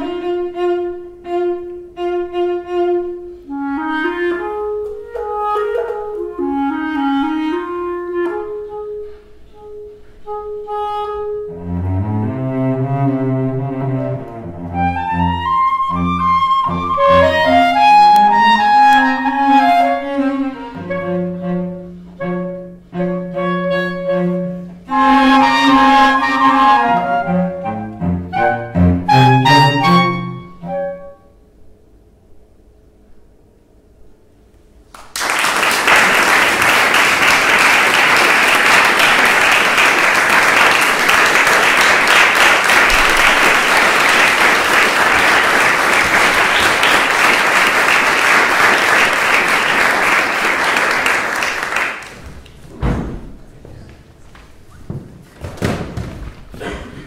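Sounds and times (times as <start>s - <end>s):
cello: 0.0s - 31.2s
clarinet: 0.0s - 31.6s.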